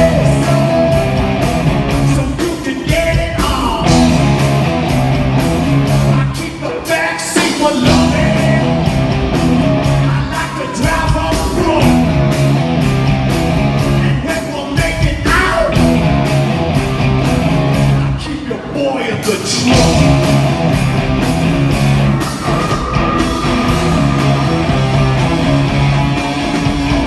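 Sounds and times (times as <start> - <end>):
electric guitar chords: 0.0 - 2.6, 3.4 - 6.4, 7.4 - 14.2, 15.6 - 18.2, 19.6 - 27.0
bass: 0.0 - 6.5, 7.4 - 18.3, 19.6 - 27.0
rock band playing: 0.0 - 18.3, 19.2 - 27.0
drums: 0.0 - 27.0.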